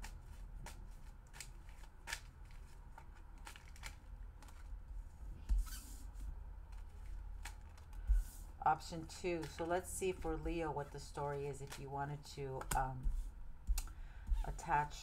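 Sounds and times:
cards being shuffled: 0:00.0 - 0:13.9.

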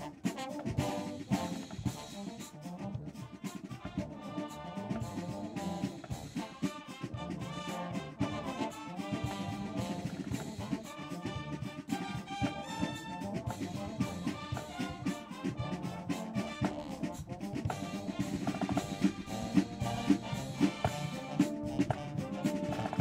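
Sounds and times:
brass melody: 0:00.0 - 0:23.0
snare and bass drums: 0:00.0 - 0:23.0.

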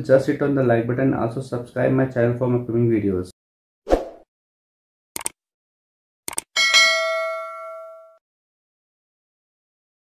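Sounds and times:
notification bell ding: 0:06.6 - 0:08.2.

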